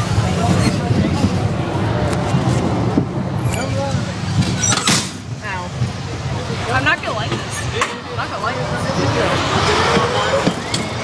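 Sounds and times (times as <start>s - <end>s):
carnival ride mechanical rumble: 0.0s - 11.0s.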